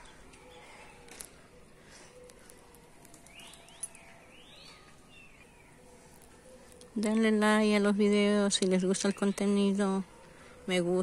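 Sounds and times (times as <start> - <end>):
faint birdsong chirps: 0.0 - 11.0.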